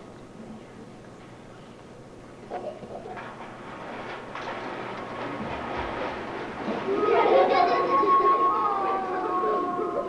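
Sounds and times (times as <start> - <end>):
stage curtain rattling rumble: 3.1 - 8.5.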